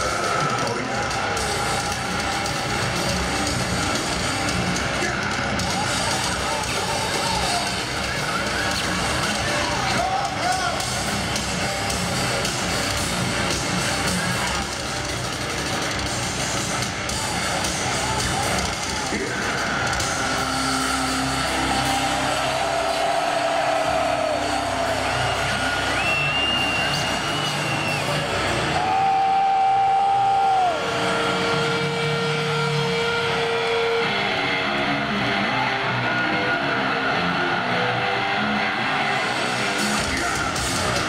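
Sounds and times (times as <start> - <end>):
crowd roar: 0.0 - 41.0
held shouts and whistles: 20.2 - 34.1.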